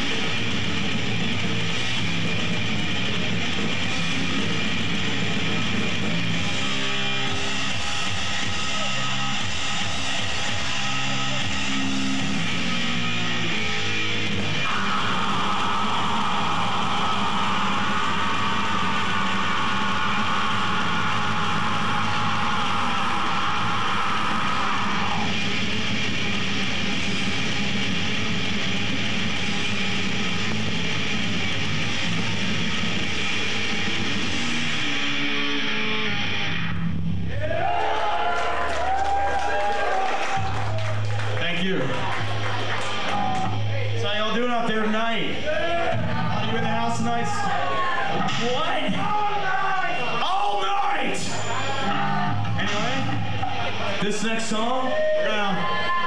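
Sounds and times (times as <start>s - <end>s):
bass and drums: 0.0s - 56.0s
distorted electric guitars: 0.0s - 56.0s.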